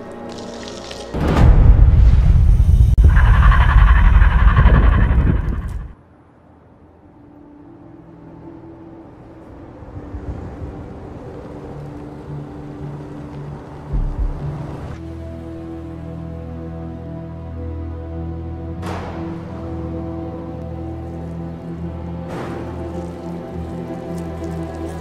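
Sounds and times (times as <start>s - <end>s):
loud deep rumble: 1.2s - 6.0s
low sustained score tones: 6.0s - 25.0s.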